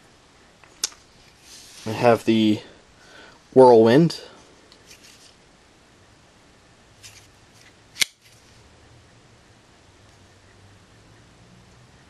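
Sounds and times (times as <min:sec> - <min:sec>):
folding knife snapping open: 0:08.0 - 0:08.2.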